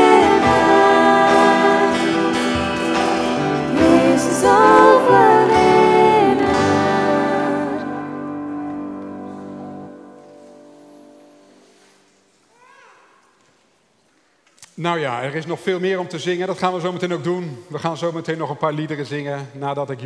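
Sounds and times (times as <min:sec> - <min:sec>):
female singers: 0:00.0 - 0:02.7, 0:03.6 - 0:08.3
acoustic guitar: 0:00.0 - 0:12.4.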